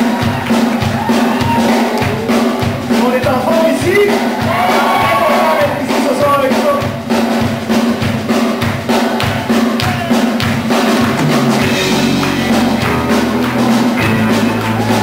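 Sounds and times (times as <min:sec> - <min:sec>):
drum kit beat: 0:00.0 - 0:15.0
rock band playing: 0:00.0 - 0:15.0
low bass notes: 0:11.0 - 0:15.0.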